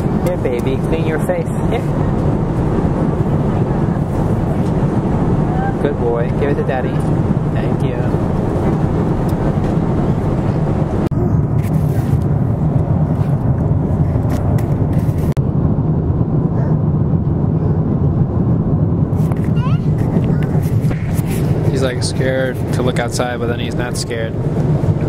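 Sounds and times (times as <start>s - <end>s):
airliner cabin drone: 0.0s - 25.0s.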